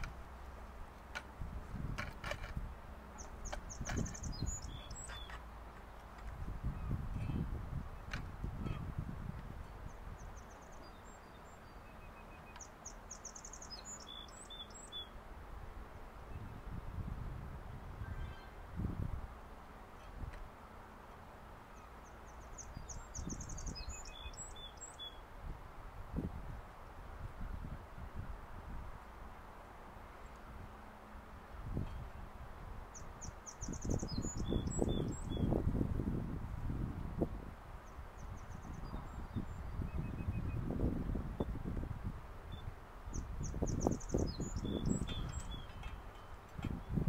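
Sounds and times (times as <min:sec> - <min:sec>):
songbird singing: 0:00.0 - 0:15.2, 0:18.0 - 0:18.7, 0:21.6 - 0:25.3, 0:31.6 - 0:36.2, 0:37.8 - 0:41.8, 0:42.4 - 0:47.0.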